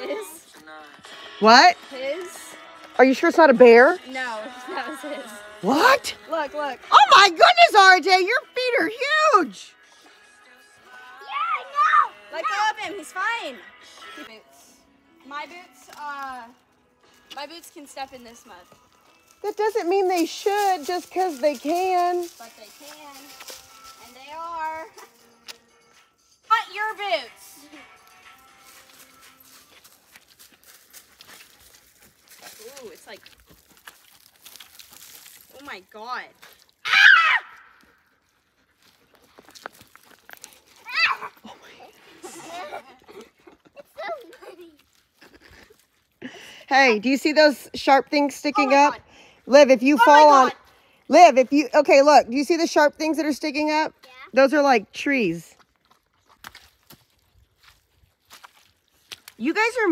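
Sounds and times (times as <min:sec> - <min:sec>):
boots squelching in wet mud: 0:28.6 - 0:36.9, 0:37.6 - 0:41.4, 0:55.6 - 0:59.9.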